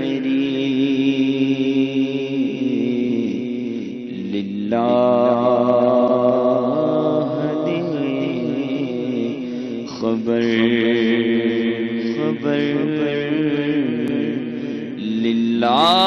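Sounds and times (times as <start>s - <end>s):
man chanting: 0.0s - 16.0s.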